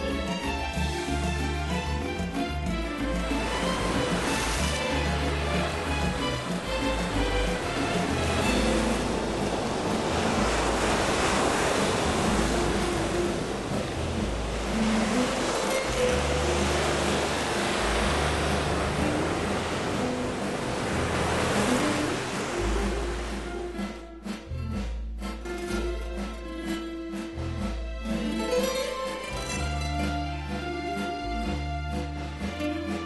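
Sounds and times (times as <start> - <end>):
surf washing over rocks: 0.0 - 24.4
background music: 0.0 - 33.0.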